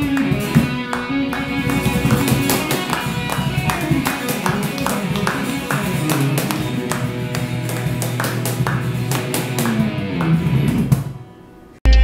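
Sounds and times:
steady percussive beat: 0:00.0 - 0:11.2
live band with guitars: 0:00.0 - 0:11.6.

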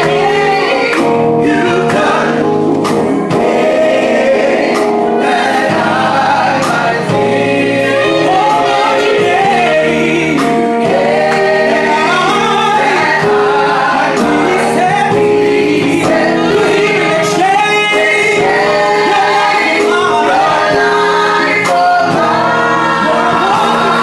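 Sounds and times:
gospel choir singing: 0:00.0 - 0:24.0
instrumental accompaniment: 0:00.0 - 0:24.0.

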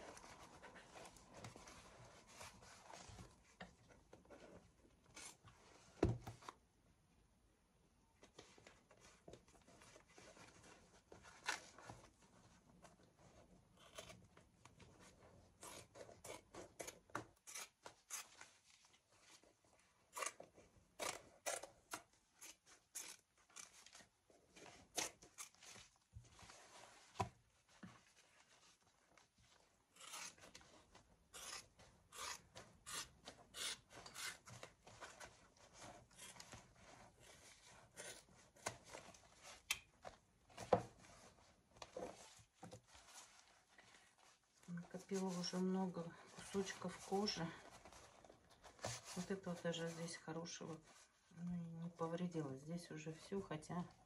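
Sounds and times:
scissors snipping leather: 0:30.0 - 0:30.5, 0:31.4 - 0:34.4.

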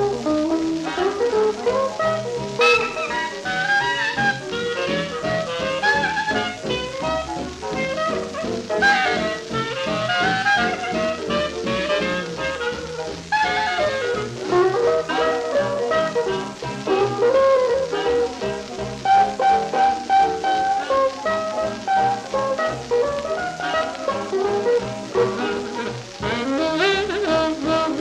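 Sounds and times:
horns playing melodic lines: 0:00.0 - 0:28.0
jazz rhythm section: 0:00.0 - 0:28.0
swing jazz from a shellac record: 0:00.0 - 0:28.0.

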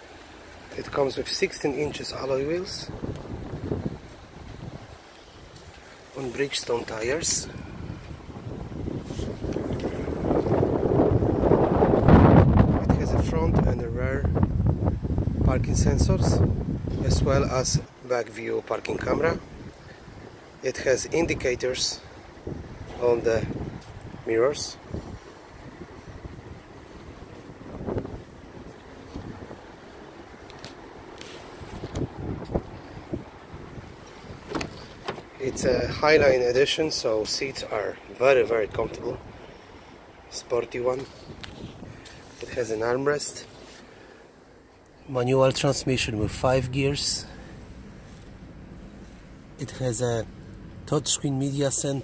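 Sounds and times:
wind buffeting microphone: 0:01.8 - 0:18.0, 0:18.8 - 0:43.2
handling knocks: 0:34.4 - 0:35.4.

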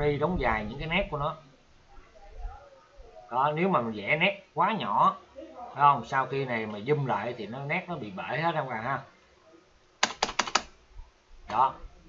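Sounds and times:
computer keyboard keystrokes: 0:10.0 - 0:10.7.

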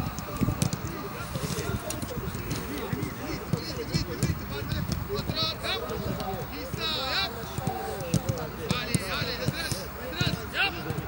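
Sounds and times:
footballs kicked thudding: 0:00.0 - 0:01.2, 0:02.0 - 0:11.0
players calling out: 0:00.0 - 0:11.0.

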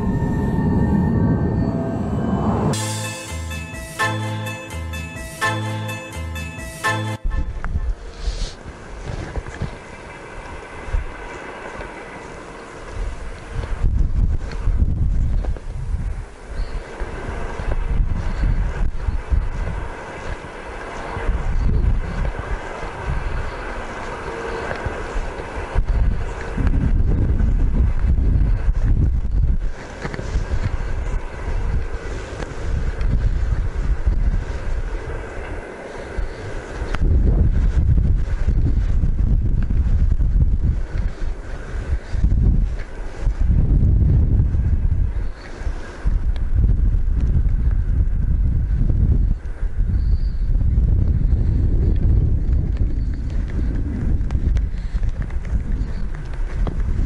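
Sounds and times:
wind buffeting microphone: 0:00.0 - 0:02.8, 0:07.2 - 0:57.0.

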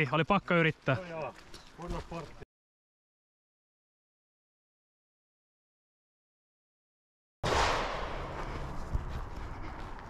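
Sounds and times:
background noise: 0:00.0 - 0:02.4.

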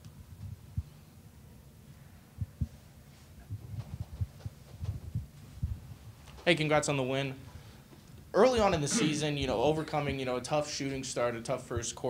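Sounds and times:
soft low thumps: 0:03.4 - 0:06.2.

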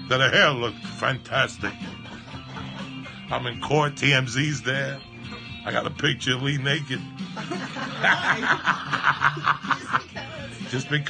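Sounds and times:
man laughing hard: 0:01.7 - 0:03.2, 0:07.4 - 0:10.5.

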